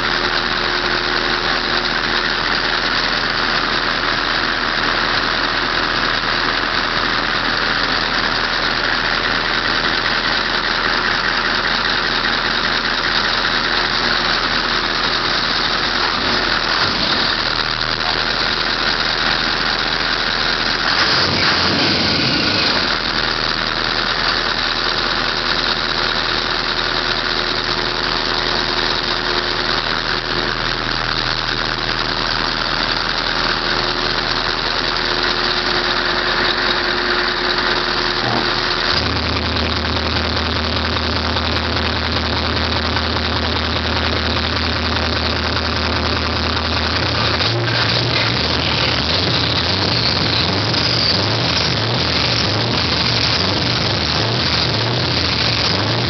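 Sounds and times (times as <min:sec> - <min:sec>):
diesel truck engine idling: 0:00.0 - 0:56.0.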